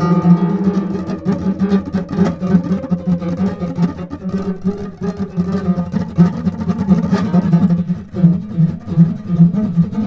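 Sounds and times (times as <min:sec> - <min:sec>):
solo acoustic guitar music: 0:00.0 - 0:10.0.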